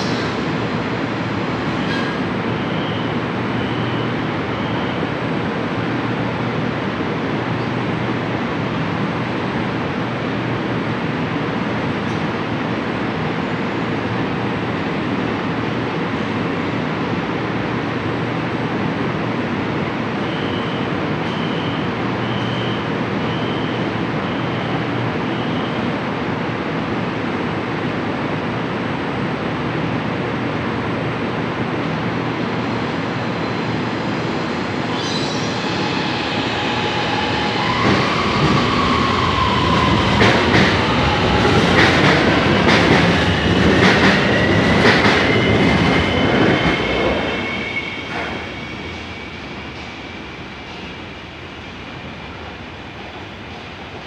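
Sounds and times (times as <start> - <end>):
train humming: 25.8 - 54.0.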